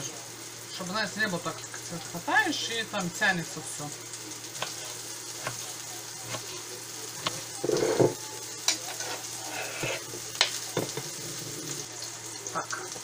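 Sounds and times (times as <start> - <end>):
meat sizzling in a pan: 0.0 - 13.0.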